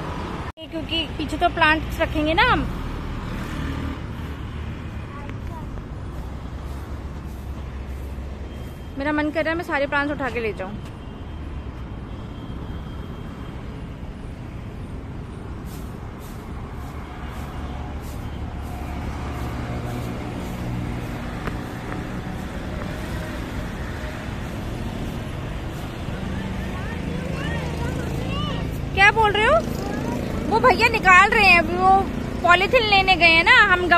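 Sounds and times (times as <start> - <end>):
vehicle engine: 0.0 - 11.0, 11.7 - 33.9
traffic rumble: 0.0 - 33.9.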